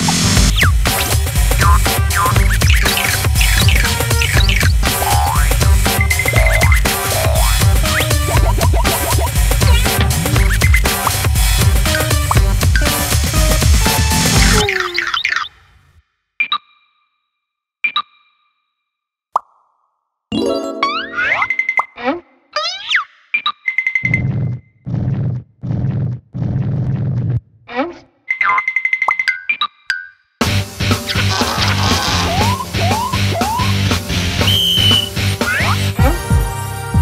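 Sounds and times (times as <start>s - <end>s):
cartoon music with sweeping glides: 0.1s - 15.2s, 20.3s - 21.9s, 30.5s - 34.2s.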